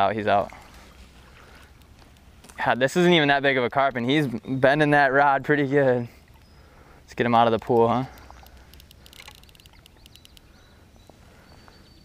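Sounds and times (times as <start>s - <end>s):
faint light clicks: 1.5s - 2.6s, 7.7s - 11.8s.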